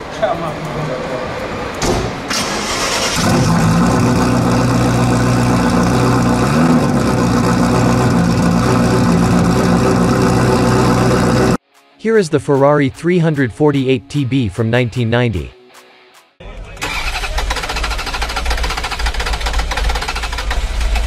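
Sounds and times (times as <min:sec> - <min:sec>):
car engine starter cranking: 0:02.3 - 0:04.0, 0:16.8 - 0:21.0
car engine idling: 0:02.7 - 0:11.6.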